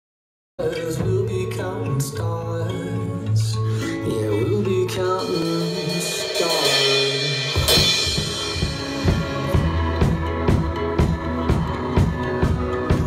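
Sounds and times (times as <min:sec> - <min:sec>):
recorded pop song: 0:00.6 - 0:13.0
drum kit beat: 0:04.6 - 0:13.0
cymbal crash: 0:05.2 - 0:10.2.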